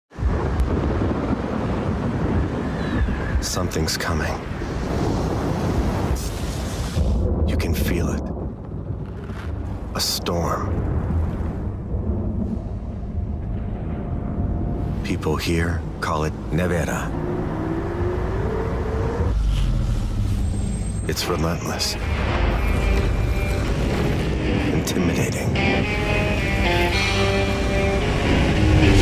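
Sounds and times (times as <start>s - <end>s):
deep storm wind rumble: 0.1s - 29.0s.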